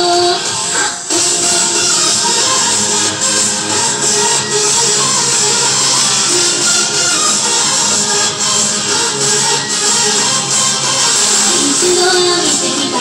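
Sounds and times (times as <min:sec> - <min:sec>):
upbeat pop music over sound system: 0:00.0 - 0:13.0.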